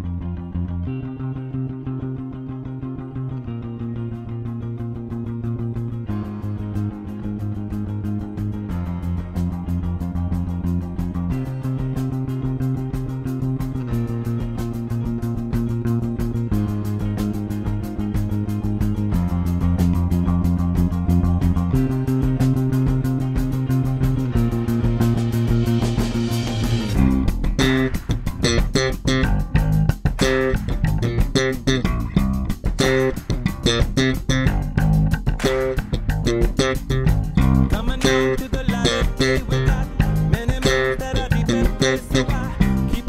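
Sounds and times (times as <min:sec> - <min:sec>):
electric bass played fingerstyle: 0:00.0 - 0:43.0
rock band backing track: 0:05.1 - 0:43.0.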